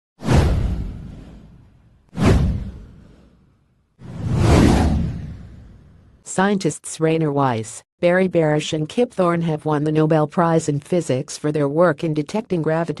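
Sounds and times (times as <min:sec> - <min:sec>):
whoosh sound effects: 0:04.0 - 0:06.0.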